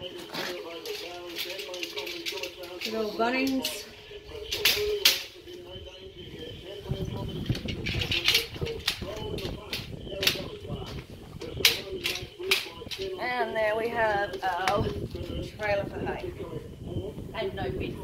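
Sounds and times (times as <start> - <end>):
metal cart frame clanking: 7.0 - 10.6.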